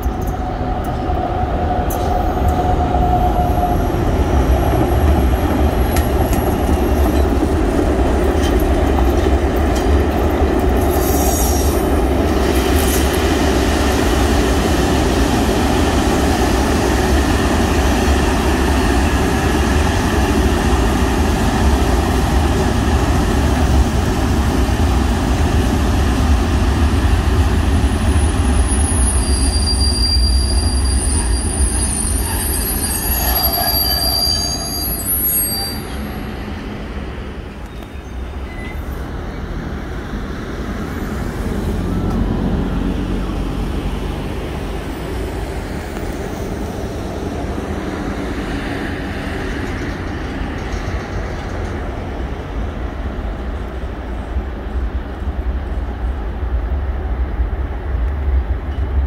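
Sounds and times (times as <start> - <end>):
freight train rolling past: 0.0 - 59.0
wheels rumbling on rails: 0.0 - 59.0
high wheel squeals: 28.2 - 36.5, 37.7 - 39.0.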